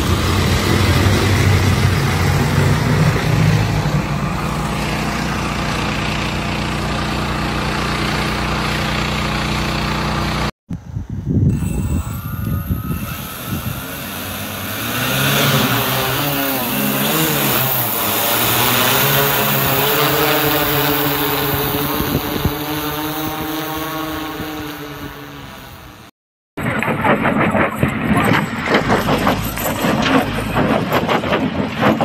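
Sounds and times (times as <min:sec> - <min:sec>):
drone propellers humming: 0:00.0 - 0:10.8, 0:11.4 - 0:32.0
rapid clatter: 0:26.6 - 0:32.0.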